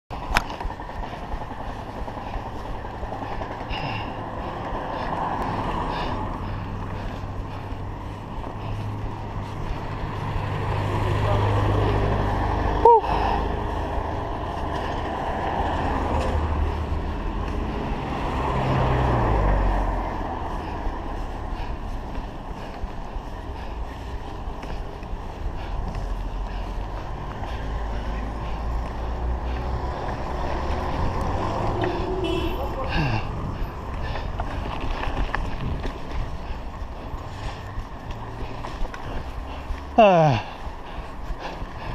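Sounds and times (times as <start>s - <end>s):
cars passing: 0.1s - 41.9s
road rumble: 0.1s - 41.9s
wind noise: 30.7s - 39.3s.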